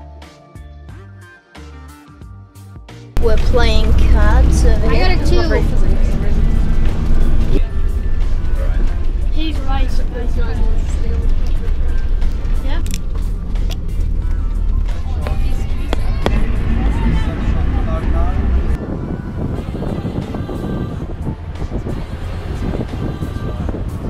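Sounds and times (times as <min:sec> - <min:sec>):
music: 0:00.0 - 0:24.0
road noise: 0:03.2 - 0:24.0
truck engine rumble: 0:03.2 - 0:24.0
voices: 0:03.2 - 0:24.0
sharp clicks: 0:11.3 - 0:14.5.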